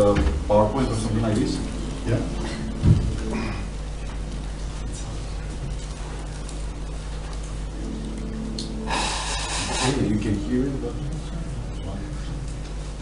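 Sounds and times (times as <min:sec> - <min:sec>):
background hiss: 0:00.0 - 0:13.0
steady low hum: 0:00.0 - 0:13.0.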